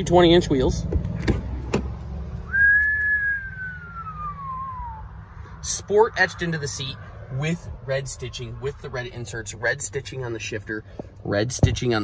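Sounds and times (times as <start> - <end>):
person whistling long note: 2.5 - 5.1.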